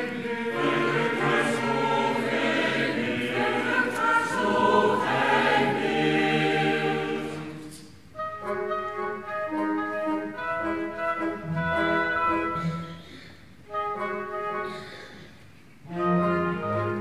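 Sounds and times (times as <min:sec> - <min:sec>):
mixed choir singing: 0:00.0 - 0:07.8
chamber orchestra: 0:00.0 - 0:17.0.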